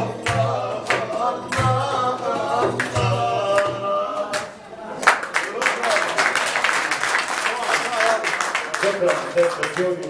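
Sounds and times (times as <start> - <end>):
people singing: 0.0 - 5.6
audience applause: 5.0 - 10.0.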